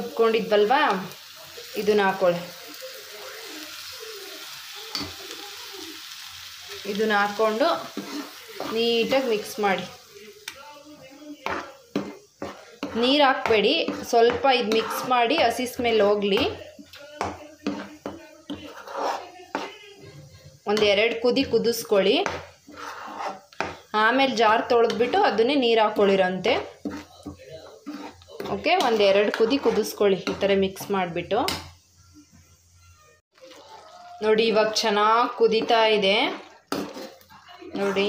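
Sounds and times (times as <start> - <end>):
paste sizzling in hot oil: 0.0 - 38.0
metal spoon scraping a frying pan: 6.8 - 9.9, 11.4 - 23.9, 24.6 - 31.8, 33.5 - 38.0.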